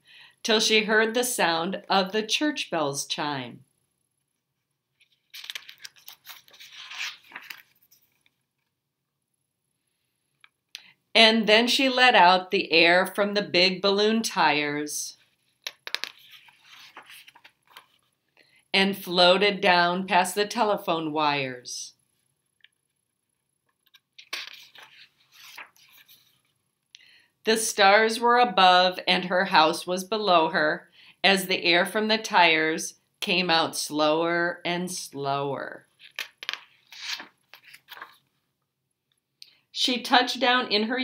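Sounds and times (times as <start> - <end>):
book page turning: 4.6 - 8.7, 15.3 - 18.2, 23.7 - 26.6, 36.0 - 38.4.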